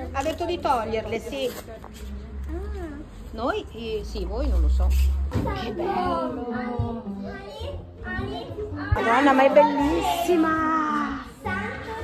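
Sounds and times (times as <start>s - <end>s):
children chattering: 0.0s - 12.0s
music playing: 5.8s - 12.0s.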